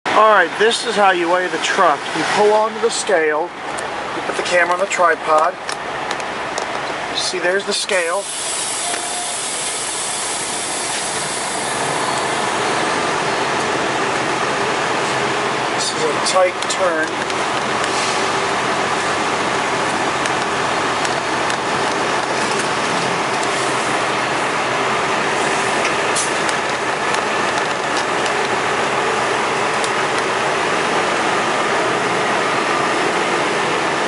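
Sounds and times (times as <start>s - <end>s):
diesel truck engine running: 0.1s - 34.0s.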